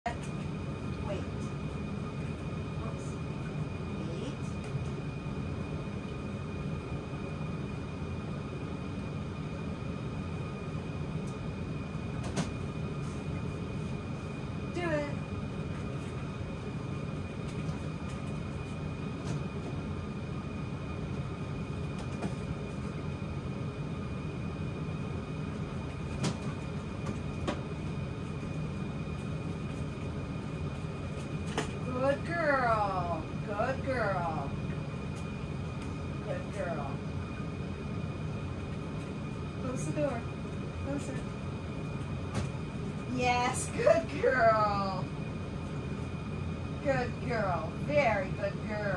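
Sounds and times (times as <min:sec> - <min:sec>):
low mechanical hum: 0:00.0 - 0:48.9
steady low rumble: 0:00.0 - 0:48.9
faint high whine: 0:00.1 - 0:48.9.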